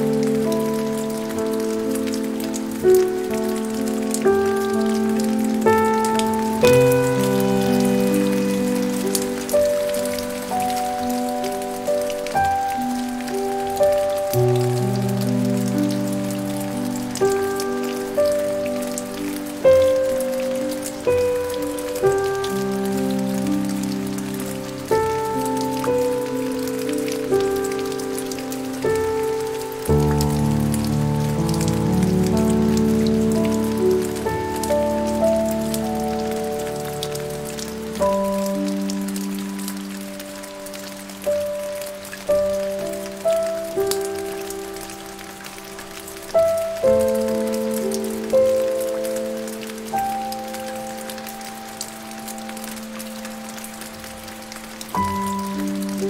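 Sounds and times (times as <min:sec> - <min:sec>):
soft slow piano: 0:00.0 - 0:56.0
steady rain: 0:00.0 - 0:56.0.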